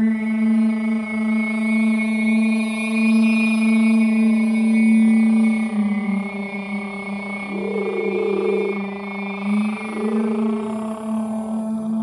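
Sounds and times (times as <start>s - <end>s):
steady drone with overtones: 7.4s - 11.8s
high sung tone sliding up: 7.5s - 8.9s, 9.5s - 11.0s.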